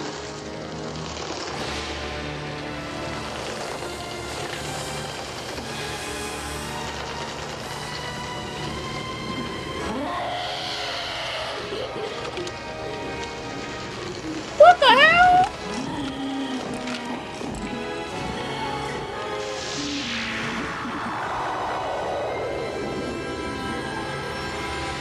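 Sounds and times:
low drone: 0:00.0 - 0:14.6, 0:15.4 - 0:25.0
orchestral film score: 0:00.0 - 0:25.0
rising sound: 0:17.3 - 0:25.0.

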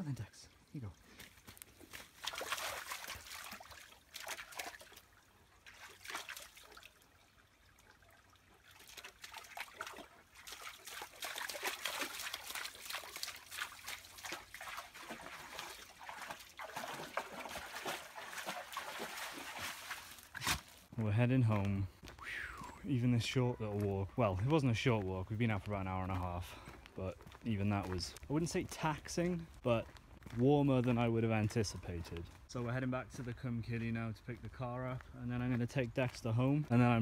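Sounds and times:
trickling stream: 0:00.0 - 0:37.0
dog splashing through water: 0:02.0 - 0:07.0, 0:08.6 - 0:20.7.

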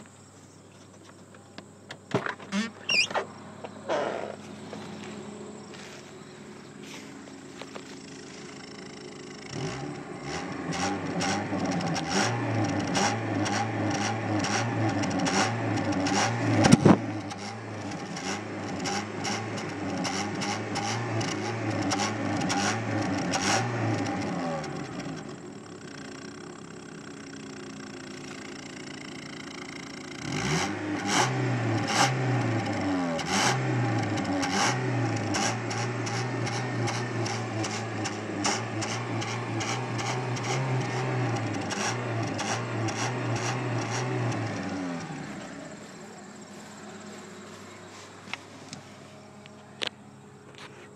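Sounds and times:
car engine idling: 0:01.2 - 0:50.9
car engine revving: 0:02.6 - 0:49.5.

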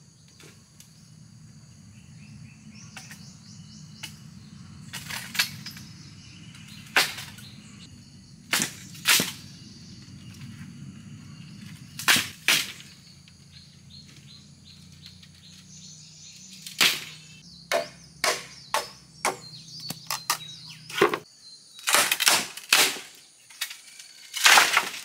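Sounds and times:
machete chopping bamboo: 0:06.8 - 0:07.5, 0:08.5 - 0:09.5, 0:12.0 - 0:13.0, 0:16.7 - 0:23.2, 0:24.3 - 0:25.0
bamboo poles knocking: 0:16.8 - 0:21.3.

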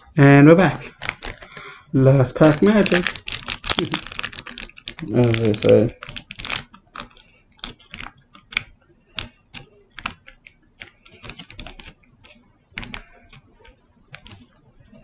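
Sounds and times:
foil wrapper crinkling and tearing: 0:00.8 - 0:01.6, 0:02.3 - 0:08.6, 0:10.8 - 0:12.0.

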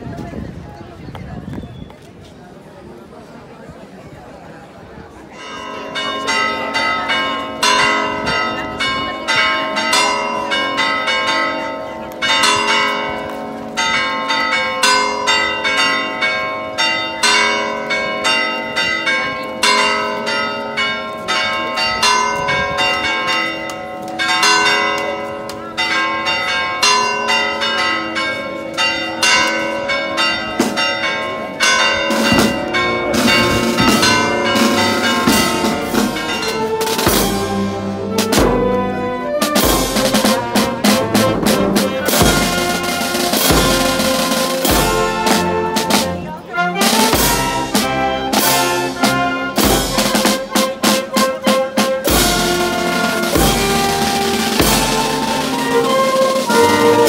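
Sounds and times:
church bells pealing: 0:05.3 - 0:57.0.

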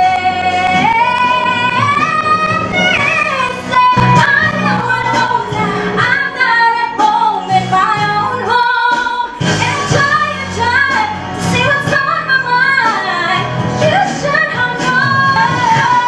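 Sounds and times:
instrumental accompaniment: 0:00.0 - 0:16.0
woman singing into a microphone: 0:00.0 - 0:16.0.

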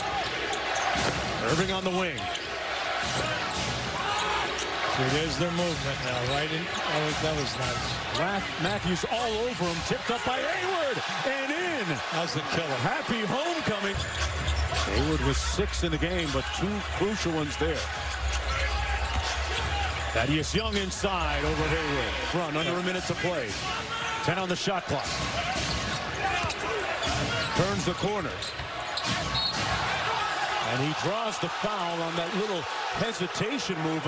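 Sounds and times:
arena crowd noise: 0:00.0 - 0:34.0.

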